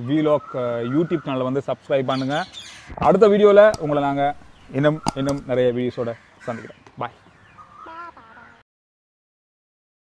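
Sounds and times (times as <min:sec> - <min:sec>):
person speaking: 0:02.2 - 0:07.2
chicken clucking: 0:06.6 - 0:08.6.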